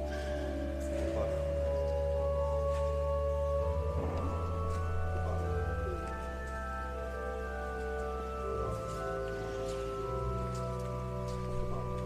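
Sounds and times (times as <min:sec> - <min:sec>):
pipe organ chords: 0:00.0 - 0:12.0
soft rustling: 0:00.0 - 0:12.0.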